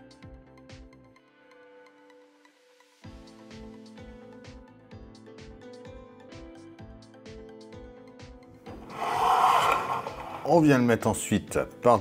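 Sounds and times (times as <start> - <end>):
faint background music: 0.0 - 12.0
model kit parts scraping: 8.8 - 10.6.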